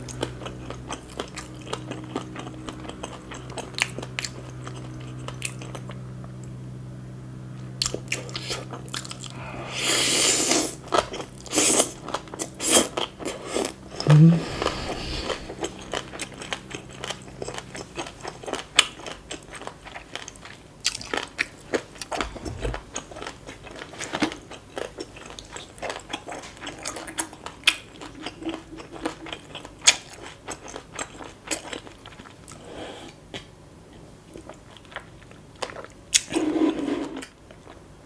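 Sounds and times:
chewing crunchy salad: 0:00.0 - 0:06.6, 0:07.6 - 0:09.4, 0:10.2 - 0:32.7, 0:34.3 - 0:37.9.

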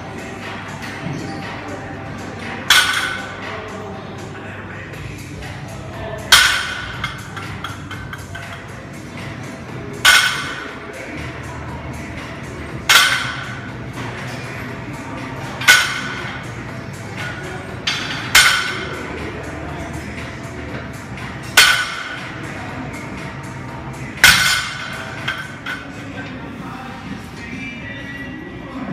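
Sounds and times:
background music: 0:00.0 - 0:28.9.

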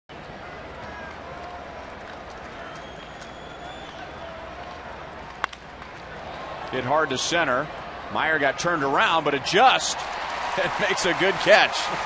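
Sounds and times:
stadium crowd murmur: 0:00.1 - 0:12.0.

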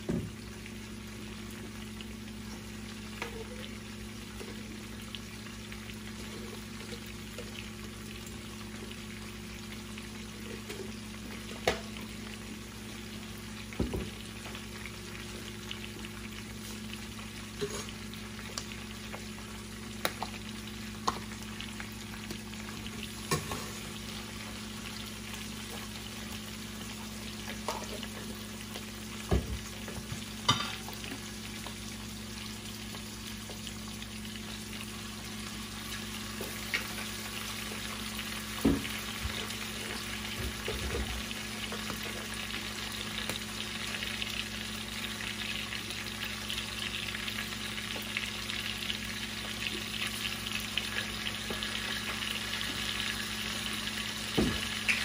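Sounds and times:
meat sizzling in a pot: 0:00.0 - 0:55.0.

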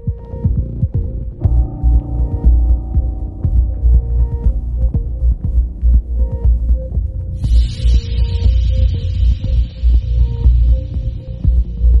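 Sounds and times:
music with deep pulsing bass: 0:00.0 - 0:12.0.

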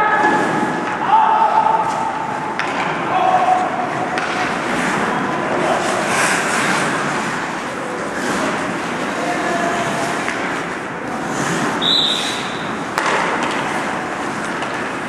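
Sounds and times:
puck cracking against boards: 0:02.6 - 0:03.0, 0:04.1 - 0:05.0, 0:12.9 - 0:15.0
skates scraping on ice: 0:02.6 - 0:15.0
short high whistle blast: 0:11.8 - 0:12.5.

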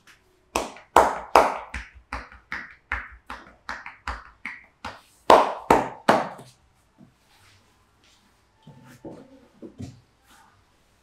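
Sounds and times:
hands slapping a back: 0:00.0 - 0:06.6.

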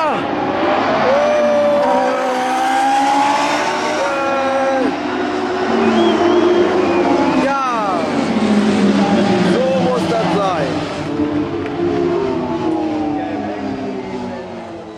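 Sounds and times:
race car engines at high revs: 0:00.0 - 0:14.9.

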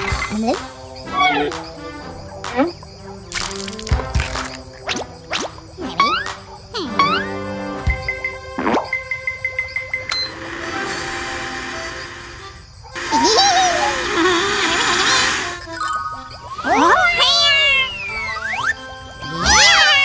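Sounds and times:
cartoon background music: 0:00.0 - 0:20.0.

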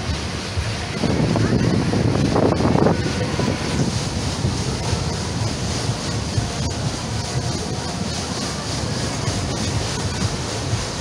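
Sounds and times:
fairground ride rumbling: 0:00.0 - 0:11.0
wind buffeting microphone: 0:00.0 - 0:11.0.

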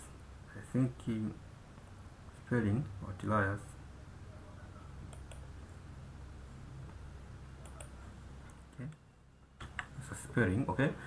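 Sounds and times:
steady low hum: 0:00.0 - 0:11.0
faint computer input clicks: 0:07.6 - 0:09.0.

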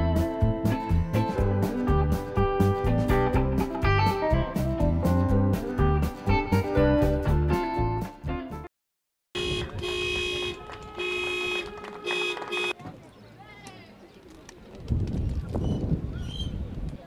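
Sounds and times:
car horn blasts: 0:09.4 - 0:12.8.

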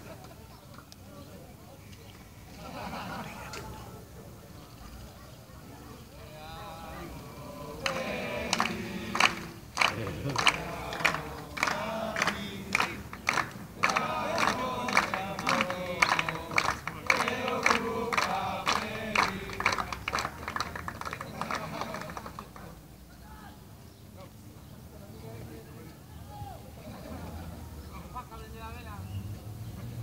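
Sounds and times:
men singing together: 0:06.4 - 0:20.2
rhythmic hand claps: 0:07.8 - 0:22.7.

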